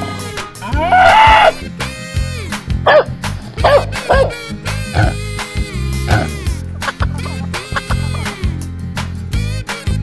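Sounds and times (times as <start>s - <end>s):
upbeat background music: 0.0s - 10.0s
dog barks: 2.8s - 4.4s.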